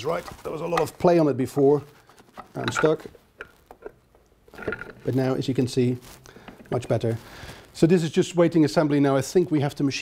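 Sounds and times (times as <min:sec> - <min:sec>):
faint metal clicks and knocks: 0:00.3 - 0:05.1.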